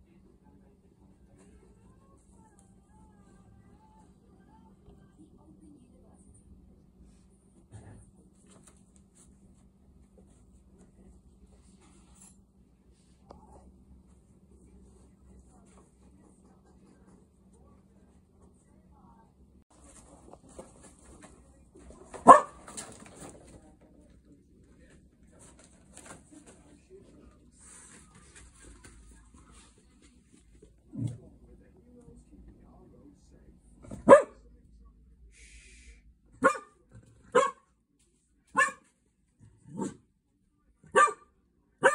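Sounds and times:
dog barking: 0:22.1 - 0:22.8, 0:33.9 - 0:34.4, 0:36.4 - 0:37.8, 0:38.5 - 0:38.9, 0:39.7 - 0:40.0, 0:40.8 - 0:41.9.

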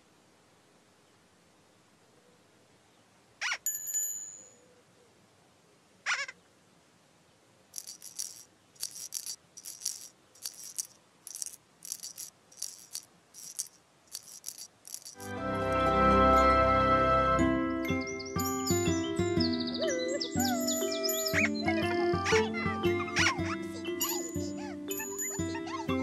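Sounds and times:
shaker-like rattles: 0:07.8 - 0:15.9, 0:20.4 - 0:21.4, 0:23.2 - 0:26.0
music with sustained tones: 0:15.2 - 0:26.0
high ringing sounds: 0:24.0 - 0:25.7.

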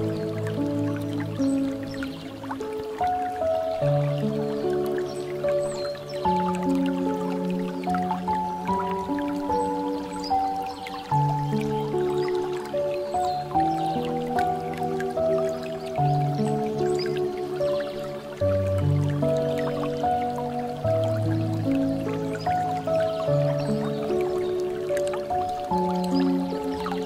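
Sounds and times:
slow piano music: 0:00.0 - 0:27.0
water trickling from fountain spout: 0:00.0 - 0:27.0.

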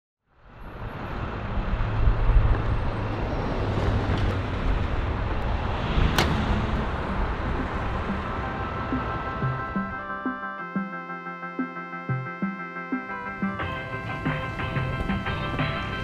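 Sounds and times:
road traffic noise: 0:00.3 - 0:16.0.

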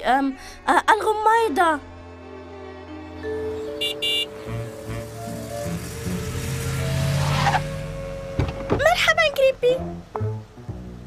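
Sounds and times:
car approaching: 0:01.8 - 0:11.0.

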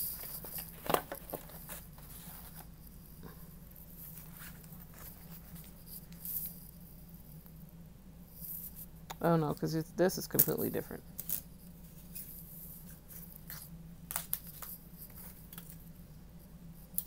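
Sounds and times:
steady low hum: 0:00.0 - 0:17.0
plastic templates rustling: 0:00.1 - 0:02.6.

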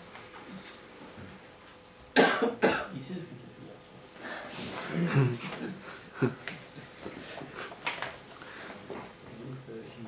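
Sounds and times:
person coughing: 0:02.2 - 0:03.0.

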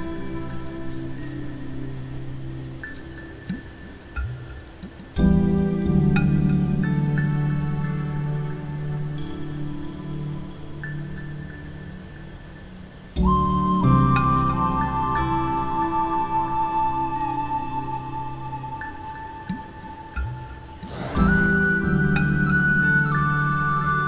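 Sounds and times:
crickets chirring: 0:00.0 - 0:24.0
music score of held chords: 0:00.0 - 0:24.0.

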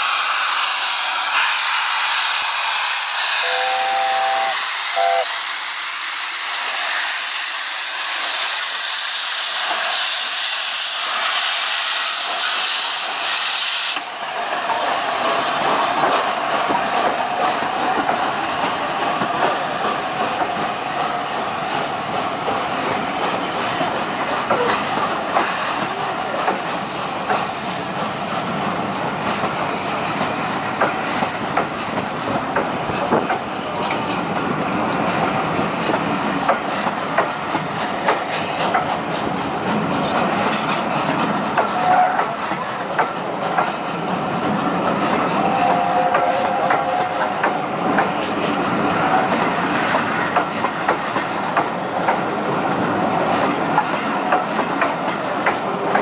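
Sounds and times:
steam locomotive chime whistle: 0:00.0 - 0:05.4
loud steam hiss: 0:00.0 - 0:26.5
train wheels clicking over rail joints: 0:04.0 - 0:56.0.

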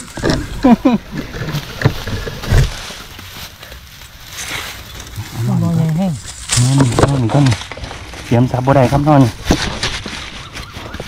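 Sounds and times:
man speaking: 0:08.3 - 0:09.4.

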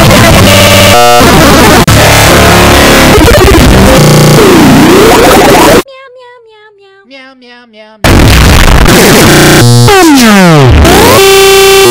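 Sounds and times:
distorted commercial music and voices: 0:00.0 - 0:06.0, 0:07.1 - 0:11.9.

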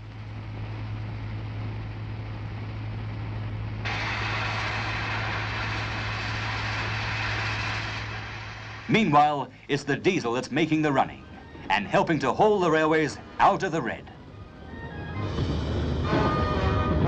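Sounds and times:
electric motor hum: 0:00.5 - 0:09.1
rushing noise: 0:03.8 - 0:17.0.

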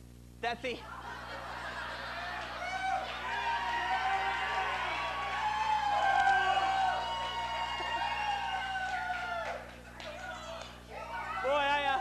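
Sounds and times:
audience cheering and whooping: 0:00.8 - 0:12.0.

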